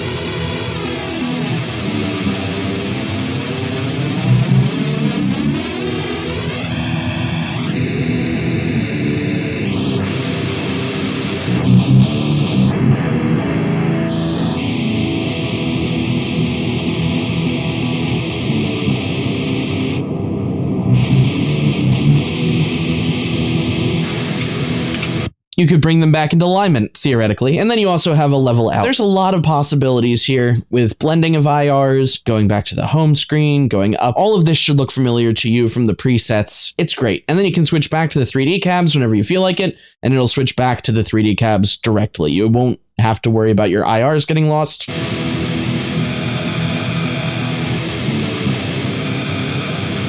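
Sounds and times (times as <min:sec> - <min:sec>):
drums: 0:00.0 - 0:19.7, 0:20.9 - 0:25.3
distorted electric guitar: 0:00.0 - 0:25.4, 0:44.8 - 0:50.0.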